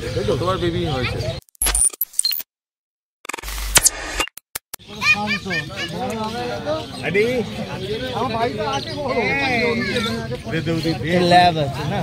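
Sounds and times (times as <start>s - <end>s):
short clicks and high beeps: 1.4s - 2.5s, 3.2s - 4.8s
sharp shutter-like clicks: 3.2s - 4.8s.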